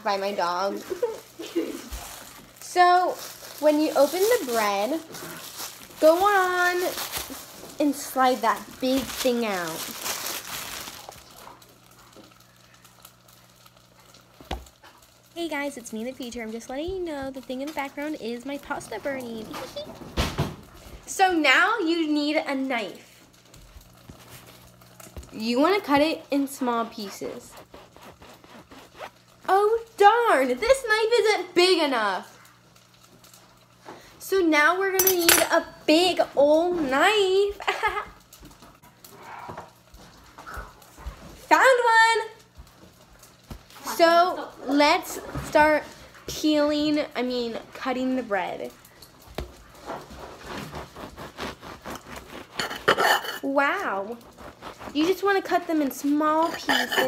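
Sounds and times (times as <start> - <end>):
knife sawing through bread crust: 27.0 - 29.4, 49.7 - 57.0.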